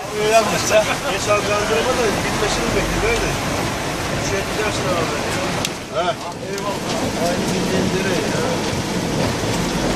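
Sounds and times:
hail and rain drumming on roof: 3.1 - 9.9.

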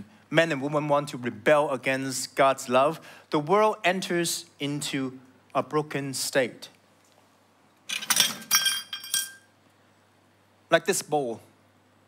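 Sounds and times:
ceramic bowl clinking: 8.0 - 9.5.

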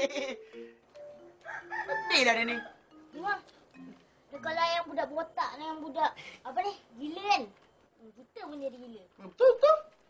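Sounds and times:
rooster crowing: 1.4 - 2.9.

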